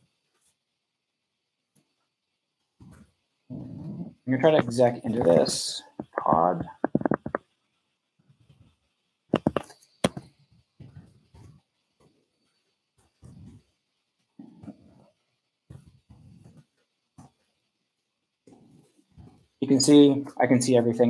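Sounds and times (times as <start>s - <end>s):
faint low vocal sounds: 3.5s - 7.0s.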